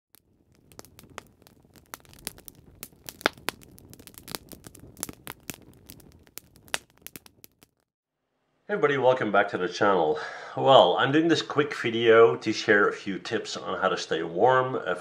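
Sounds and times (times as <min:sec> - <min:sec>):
wood fire crackling and popping: 0:00.1 - 0:07.9.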